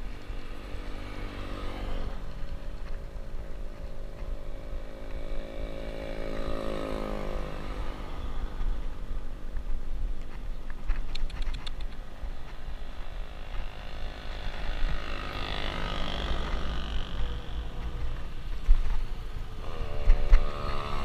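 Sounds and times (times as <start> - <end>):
wind rumble on microphone: 0.0 - 21.0
vehicle engine passing by: 0.4 - 3.0, 4.8 - 8.8, 12.8 - 18.4, 19.6 - 21.0.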